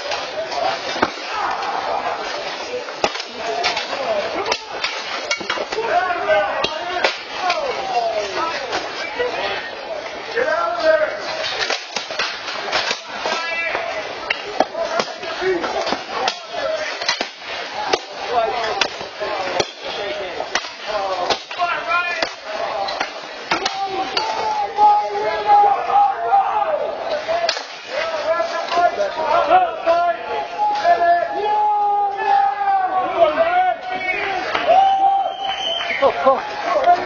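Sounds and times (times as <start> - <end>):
men shouting: 0.5 - 2.6, 17.7 - 34.5.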